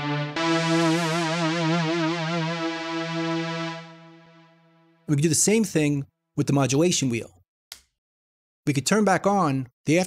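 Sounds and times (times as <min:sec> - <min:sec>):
synth pad note with vibrato: 0:00.0 - 0:05.1.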